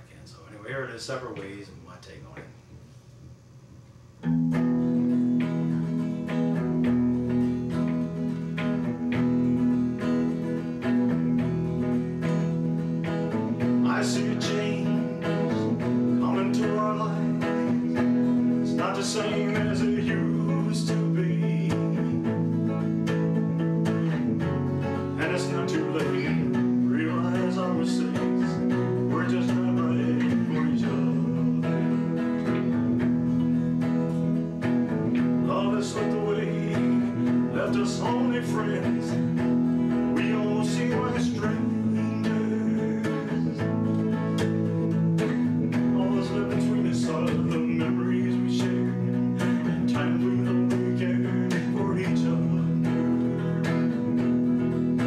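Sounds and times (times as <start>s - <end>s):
solo electric guitar melody: 4.2s - 55.0s.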